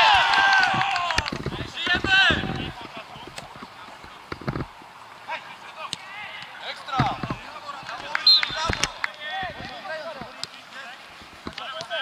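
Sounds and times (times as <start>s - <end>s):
players shouting: 0.0s - 3.2s.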